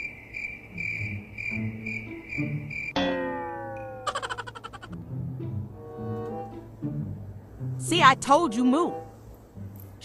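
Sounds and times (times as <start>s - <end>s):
cricket chirping: 0.0s - 5.0s.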